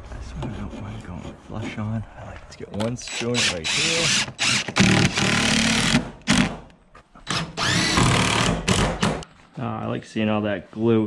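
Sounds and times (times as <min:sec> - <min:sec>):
cordless driver driving screws: 0:03.1 - 0:06.5, 0:07.3 - 0:09.2.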